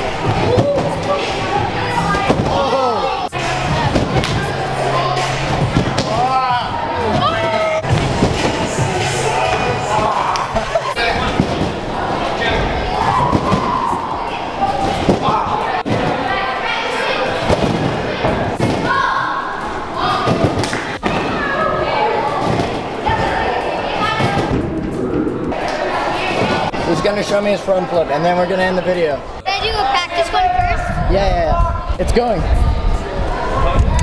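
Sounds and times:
heavy thumps on trampolines: 0:17.4 - 0:19.1.

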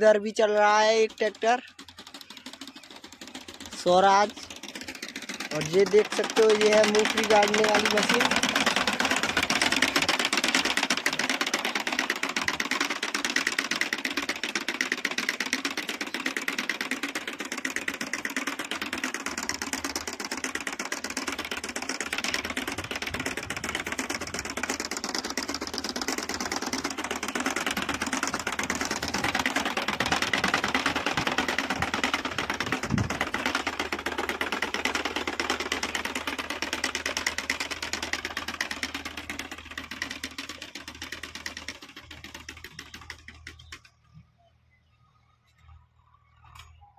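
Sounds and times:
planter rattling and clicking: 0:00.0 - 0:44.2.

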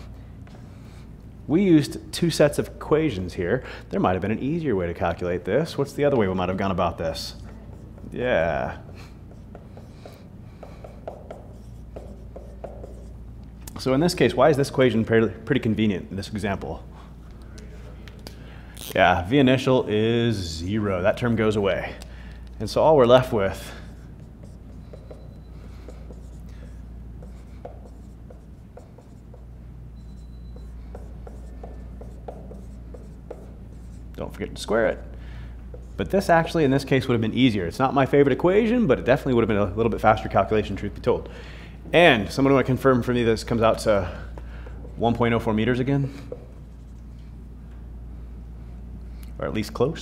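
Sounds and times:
low room hum: 0:00.0 - 0:50.0
marker writing on whiteboard: 0:06.1 - 0:13.3, 0:23.1 - 0:35.1, 0:35.7 - 0:36.6, 0:43.5 - 0:47.4
marker squeaks: 0:18.8 - 0:19.0, 0:23.9 - 0:34.0.

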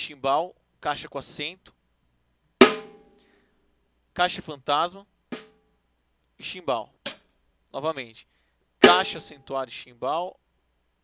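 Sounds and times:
snare drum hit: 0:02.6 - 0:03.0, 0:08.8 - 0:09.2.

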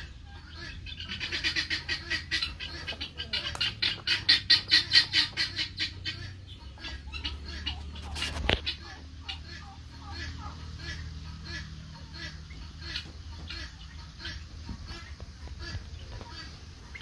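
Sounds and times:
chickens squawking: 0:00.0 - 0:17.0.

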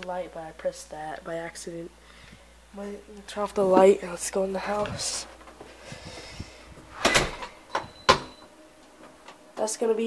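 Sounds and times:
door banging shut: 0:07.0 - 0:08.4.

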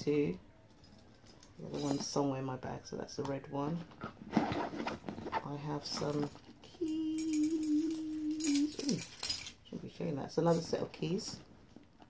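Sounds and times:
keys jingling: 0:00.7 - 0:02.2, 0:05.9 - 0:09.6
person humming: 0:06.6 - 0:09.1.

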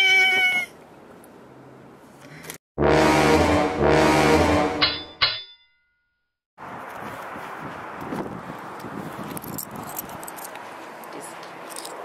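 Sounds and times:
metallic chime strikes: 0:04.8 - 0:06.0.

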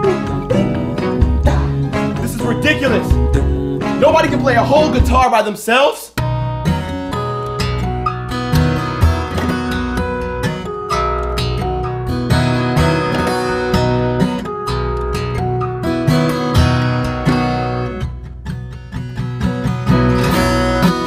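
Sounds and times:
low bass line: 0:00.0 - 0:05.2
acoustic guitar music: 0:00.0 - 0:21.0.

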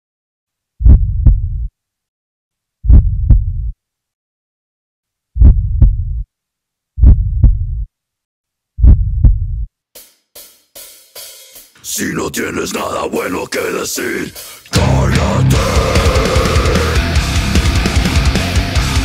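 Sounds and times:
heartbeat: 0:00.8 - 0:01.7, 0:02.8 - 0:03.8, 0:05.4 - 0:06.3, 0:07.0 - 0:07.9, 0:08.8 - 0:09.7.

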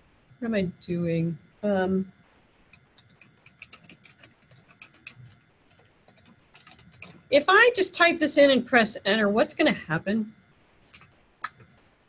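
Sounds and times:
faint keyboard typing: 0:02.6 - 0:08.2, 0:10.9 - 0:11.8.

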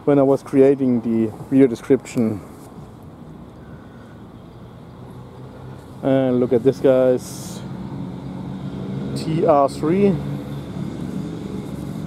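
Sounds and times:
person speaking: 0:00.0 - 0:02.8
low outdoor background hum: 0:00.0 - 0:12.0.

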